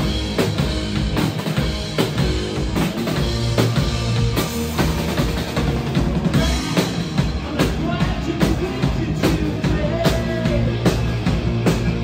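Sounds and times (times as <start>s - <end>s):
bass guitar: 0.0s - 12.0s
distorted electric guitars: 0.0s - 12.0s
drum kit beat: 0.0s - 12.0s.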